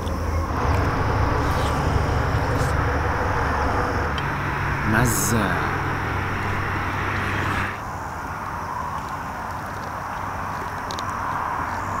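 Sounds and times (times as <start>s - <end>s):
low hum: 0.0s - 7.8s
outdoor background rush: 0.0s - 12.0s.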